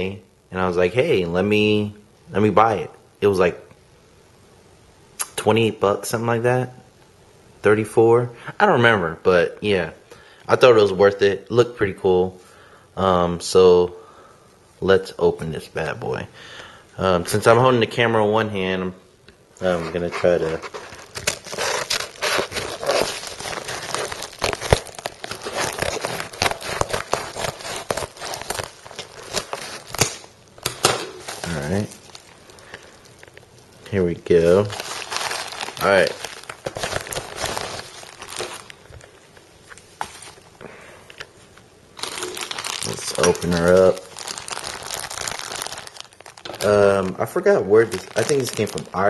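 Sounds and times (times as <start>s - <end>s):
plastic mailing bag crinkling: 19.6s - 39.2s, 42.0s - 49.0s.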